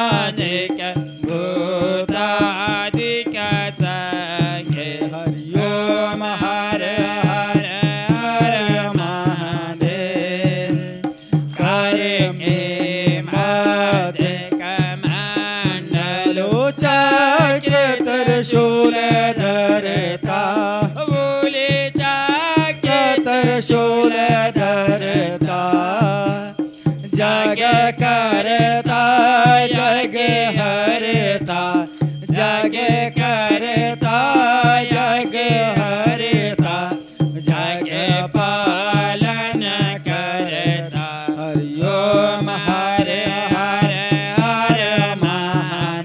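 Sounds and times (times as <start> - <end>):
steady percussion beat: 0.0 - 46.0.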